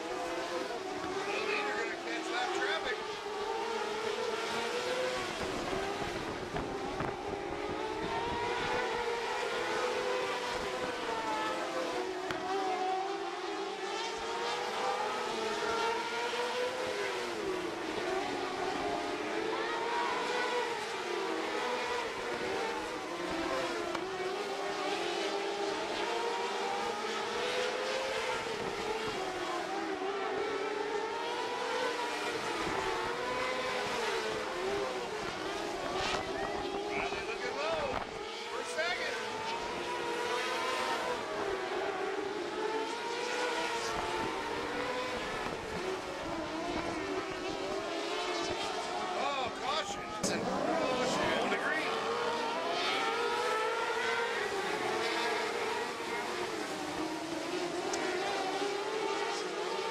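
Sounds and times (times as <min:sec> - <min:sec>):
race car engines roaring: 0:00.0 - 0:59.9.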